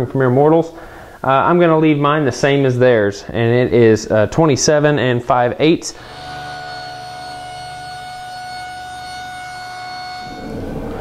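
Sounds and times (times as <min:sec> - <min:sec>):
table saw whining: 0:05.9 - 0:11.0.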